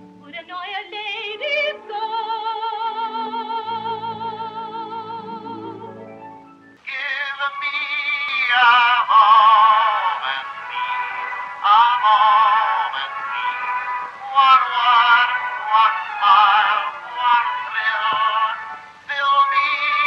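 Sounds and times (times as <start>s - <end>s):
high singing voice with vibrato: 0.2s - 6.1s, 6.9s - 20.0s.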